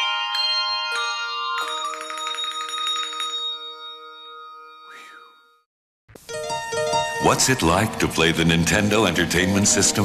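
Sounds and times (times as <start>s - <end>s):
bell chimes chord: 0.0s - 5.7s.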